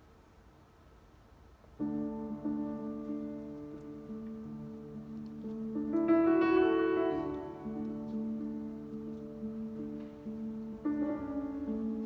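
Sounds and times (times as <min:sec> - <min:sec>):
grand piano chords: 0:01.8 - 0:12.0.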